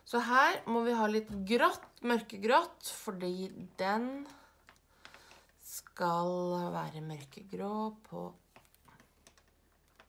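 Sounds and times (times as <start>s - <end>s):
knitting needles clicking: 8.5s - 10.0s.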